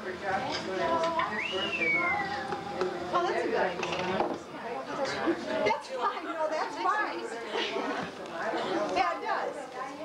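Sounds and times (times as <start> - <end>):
overlapping party chatter: 0.0 - 10.0.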